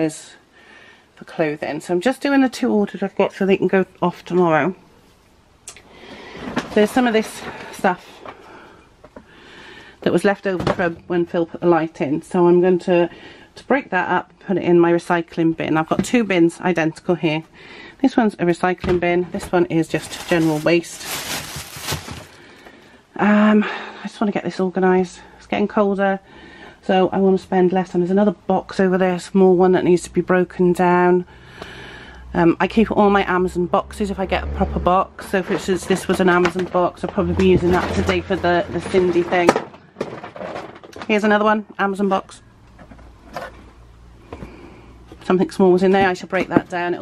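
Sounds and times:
packaging rustling and crackling: 0:19.8 - 0:22.6
cardboard scraping: 0:19.9 - 0:22.4.

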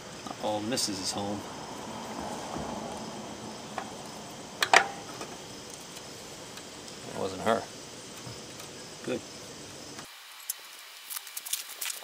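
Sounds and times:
insects chirping: 0:00.0 - 0:12.0.

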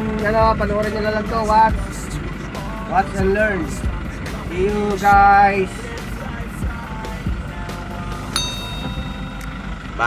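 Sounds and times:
road noise: 0:00.0 - 0:10.0
vehicle engine rumble: 0:00.0 - 0:10.0
bright ding: 0:08.4 - 0:09.6.

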